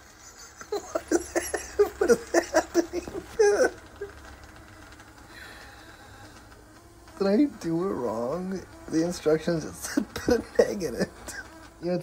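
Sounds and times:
egg cooker humming: 0.0s - 12.0s
egg mixture sizzling: 0.0s - 12.0s.

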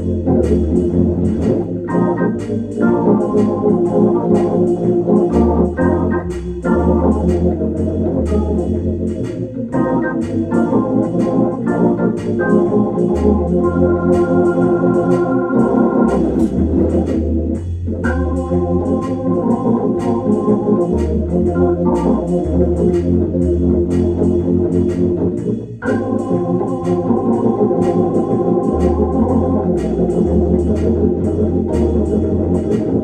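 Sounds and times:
organ playing blues: 0.0s - 33.0s.

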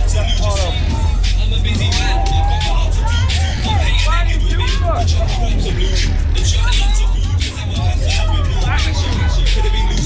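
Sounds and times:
loud dance music with bass beat: 0.0s - 10.0s.

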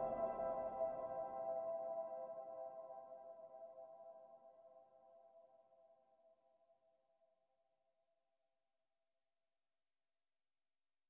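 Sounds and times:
ambient music held chord: 0.0s - 4.5s.

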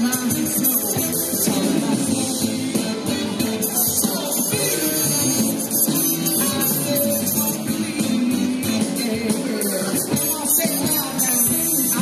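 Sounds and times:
drums: 0.0s - 12.0s
electric guitar: 0.0s - 12.0s
keyboard: 0.0s - 12.0s.

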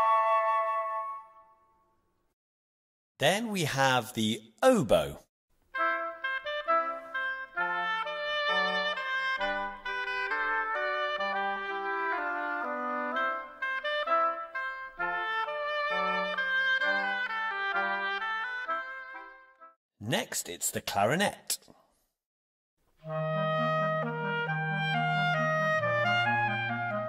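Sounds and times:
oboe melody: 0.0s - 1.8s, 5.8s - 19.7s, 23.0s - 27.0s.

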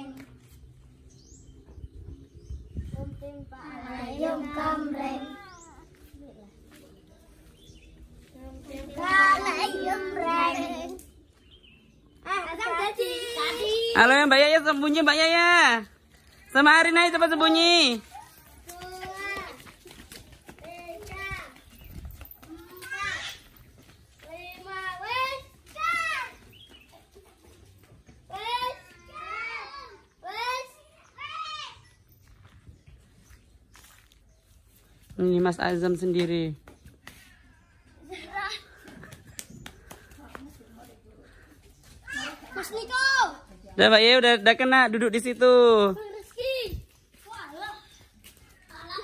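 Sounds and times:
children shouting: 3.8s - 5.9s, 8.7s - 11.0s, 12.2s - 14.0s, 18.0s - 20.0s, 22.4s - 23.6s, 24.3s - 26.5s, 28.3s - 31.9s, 41.8s - 43.5s
children crying out: 22.6s - 23.6s.

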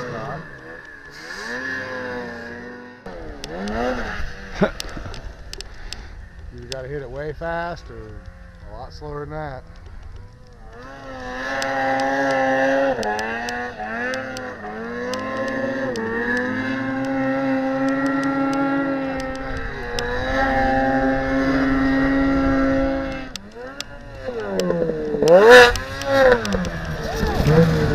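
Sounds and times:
snowmobile engine at high revs: 0.0s - 9.3s, 10.2s - 27.9s.

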